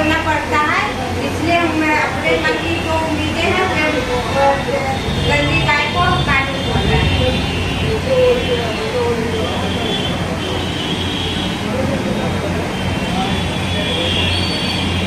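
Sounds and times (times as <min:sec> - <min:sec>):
busy street rumble: 0:00.0 - 0:15.0
indistinct voices: 0:00.0 - 0:15.0.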